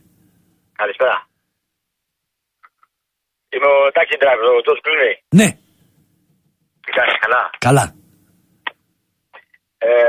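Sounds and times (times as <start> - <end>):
man saying ehh over phone: 5.3 - 5.6.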